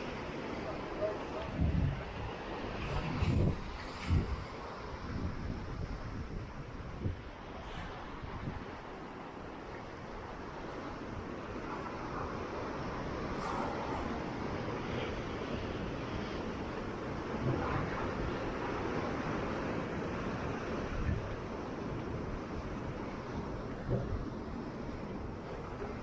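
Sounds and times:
waves breaking on rocks: 0.0 - 26.0
wind buffeting microphone: 0.3 - 26.0.

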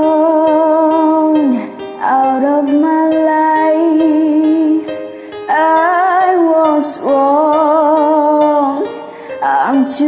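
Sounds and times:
person singing slow ballad: 0.0 - 10.0
soft karaoke backing track: 0.0 - 10.0.

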